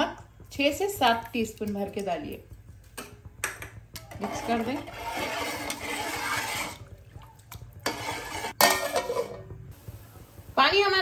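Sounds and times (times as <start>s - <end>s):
spoon stirring water in a pot: 0.6s - 9.4s
spoon scraping against metal pot: 4.0s - 6.9s, 7.8s - 9.4s
metal lid clanking onto pot: 7.9s - 9.4s.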